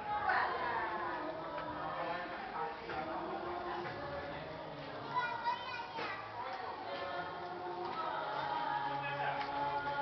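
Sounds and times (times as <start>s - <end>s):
children talking and calling out: 5.0s - 7.2s.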